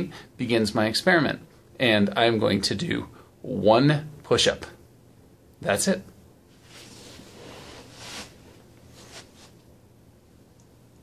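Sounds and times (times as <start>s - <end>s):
clothing rustling: 6.5s - 9.7s.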